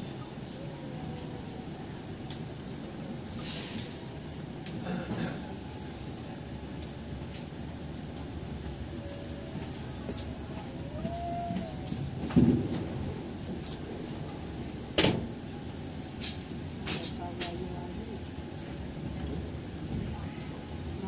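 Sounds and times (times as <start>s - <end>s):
train carriage rumble: 0.0s - 21.0s.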